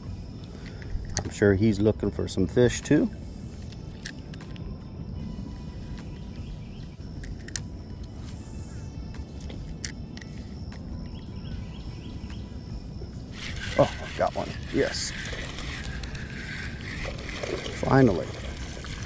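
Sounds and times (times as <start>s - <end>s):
faint bird chirps: 11.0s - 13.9s
wind rumbling on microphone: 13.0s - 19.0s
spinning reel clicks: 13.3s - 19.0s.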